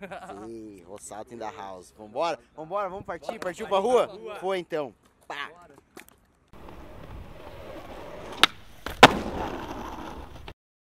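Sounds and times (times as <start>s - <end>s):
skateboard wheels rolling: 6.0s - 10.6s.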